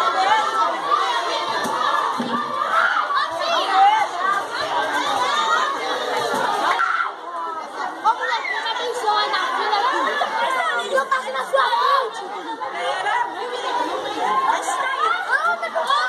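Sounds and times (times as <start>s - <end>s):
crowd chattering: 0.0s - 16.0s
high-pitched children's voices: 0.0s - 16.0s.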